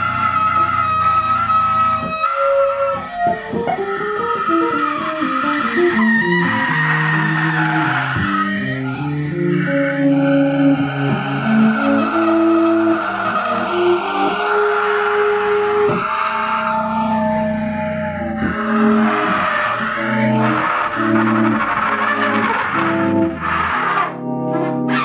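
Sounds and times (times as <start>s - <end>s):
electric guitar improvising: 0.0s - 25.0s.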